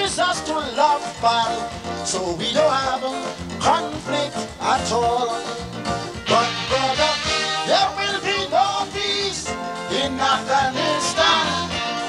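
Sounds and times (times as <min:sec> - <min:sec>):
man singing into a microphone: 0:00.0 - 0:05.6, 0:06.2 - 0:11.7
band playing up-tempo calypso: 0:00.0 - 0:12.0.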